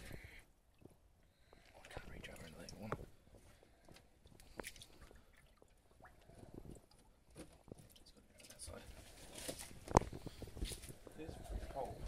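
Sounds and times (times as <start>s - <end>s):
faint soft rustle: 7.4s - 12.0s.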